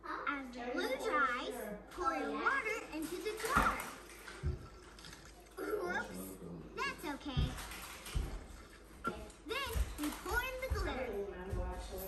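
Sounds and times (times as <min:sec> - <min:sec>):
water running faintly: 0:00.8 - 0:12.0.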